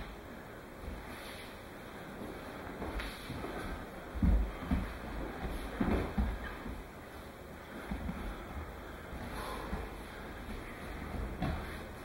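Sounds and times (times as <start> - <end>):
low steady rumble: 0.0 - 12.0
bodies thudding on padded mat: 2.6 - 12.0.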